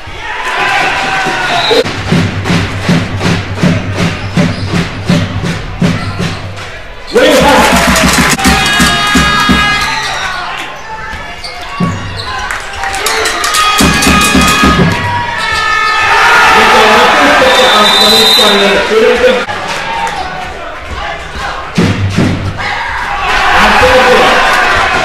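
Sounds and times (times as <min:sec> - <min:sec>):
crowd noise: 0:00.0 - 0:25.0.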